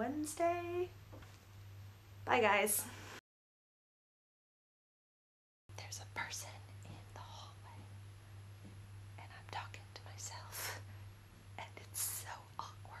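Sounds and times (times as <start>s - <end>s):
low electrical hum: 0.0s - 3.2s, 5.7s - 13.0s
woman whispering: 5.7s - 7.9s, 9.2s - 10.9s, 11.6s - 13.0s.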